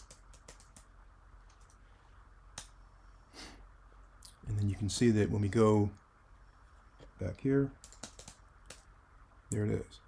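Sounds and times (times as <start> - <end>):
keyboard and mouse clicks: 0.0 - 1.8, 7.8 - 8.9.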